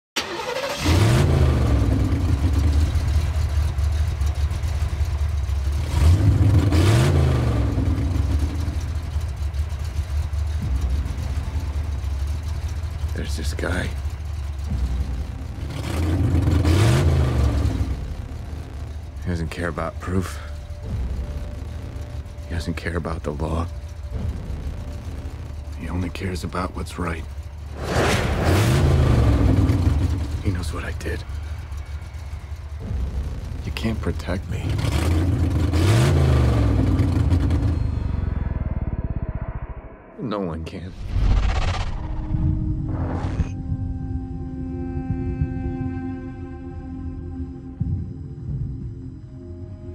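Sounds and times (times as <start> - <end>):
deep rumbling drone: 0.8 - 49.9
low tone: 7.5 - 40.3, 40.9 - 49.9
low cinematic booms: 13.9 - 40.2
loud whoosh: 27.6 - 33.8, 37.1 - 40.2, 40.9 - 43.6.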